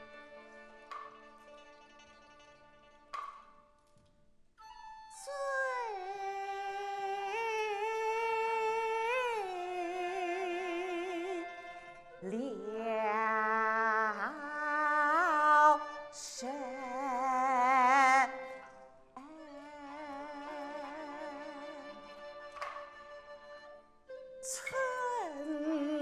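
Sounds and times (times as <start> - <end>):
opera ensemble playing: 0.0 - 3.7, 4.6 - 26.0
woman singing with vibrato: 5.2 - 18.6, 19.2 - 21.9, 24.4 - 26.0.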